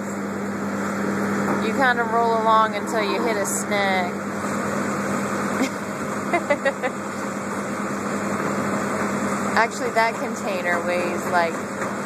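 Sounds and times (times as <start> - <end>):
machinery drone with low hum: 0.0 - 12.0.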